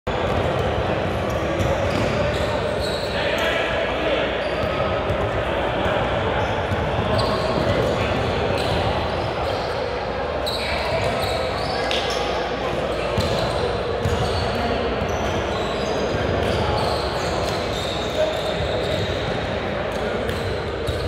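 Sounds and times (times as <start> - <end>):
chatter of voices: 0.1 - 21.0.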